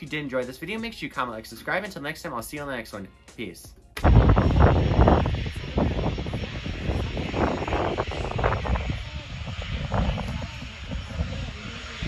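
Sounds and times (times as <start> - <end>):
propeller aircraft engine rumbling: 4.0 - 12.0.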